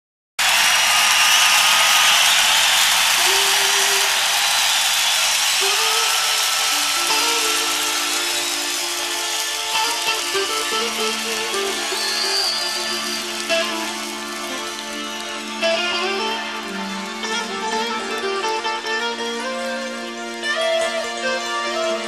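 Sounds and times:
audience cheering and applauding: 0:00.4 - 0:22.0.

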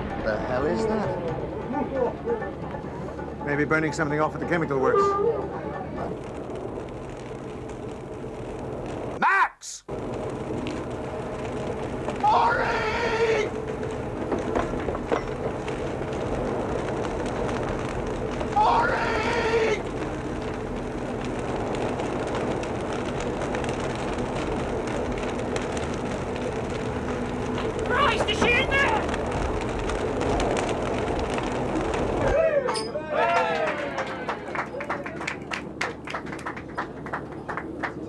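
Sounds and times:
low hum: 0:00.0 - 0:09.2, 0:09.9 - 0:38.0
fire rushing: 0:00.0 - 0:38.0
person calling out: 0:09.2 - 0:09.9.

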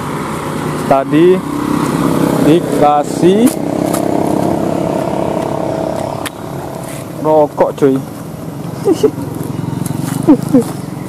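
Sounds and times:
passing vehicle engine hum: 0:00.0 - 0:11.0.

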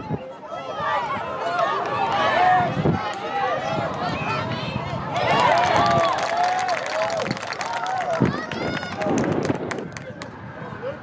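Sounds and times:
voices shouting outdoors: 0:00.0 - 0:09.7.

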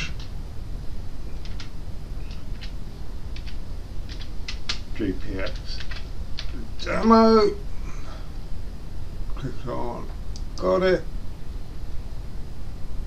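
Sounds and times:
computer keyboard typing: 0:01.4 - 0:01.7, 0:02.3 - 0:06.6.

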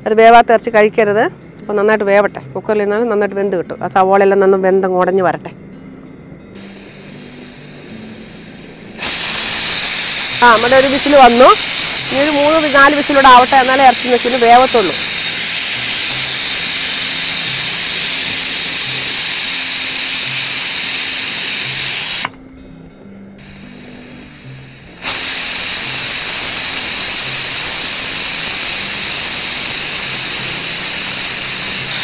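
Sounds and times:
pressure cooker steam hissing: 0:06.6 - 0:22.4, 0:23.4 - 0:32.0.

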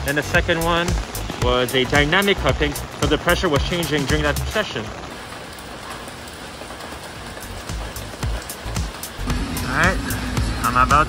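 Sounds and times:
low thuds: 0:00.0 - 0:04.6
rain falling on street: 0:00.0 - 0:11.0.

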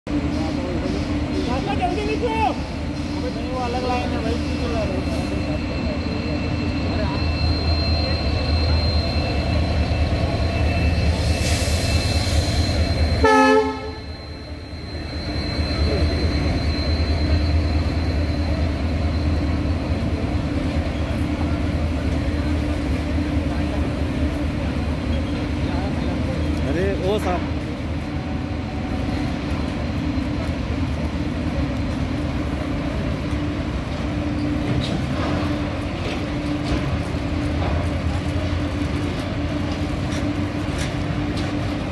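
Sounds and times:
train rumbling: 0:00.1 - 0:41.9
train horn blast: 0:13.2 - 0:14.1.

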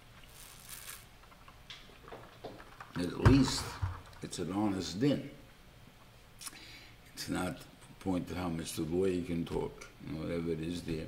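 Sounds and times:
sipping through a plastic straw: 0:00.2 - 0:01.1.

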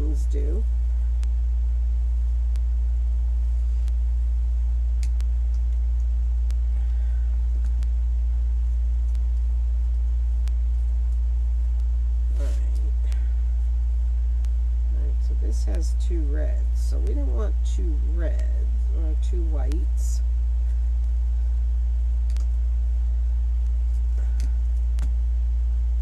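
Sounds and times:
person speaking: 0:00.0 - 0:00.8, 0:12.3 - 0:13.8, 0:14.8 - 0:20.2
loud low hum: 0:00.0 - 0:26.0.

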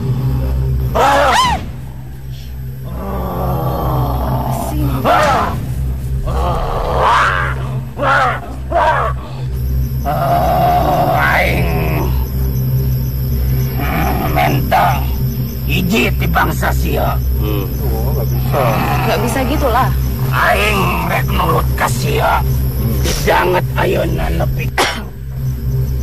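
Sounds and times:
low background music: 0:00.0 - 0:26.0
low steady drone: 0:00.0 - 0:26.0
man making animal-like cries: 0:02.4 - 0:05.6, 0:06.2 - 0:12.2, 0:13.7 - 0:19.6, 0:20.2 - 0:25.0.

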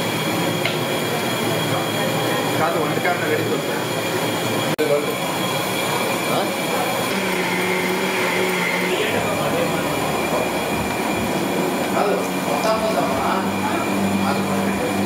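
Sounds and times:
stove burner rushing: 0:00.0 - 0:15.0.

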